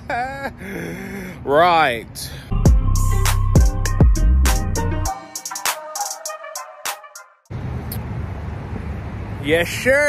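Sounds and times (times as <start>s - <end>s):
hip-hop beat: 2.5s - 7.5s.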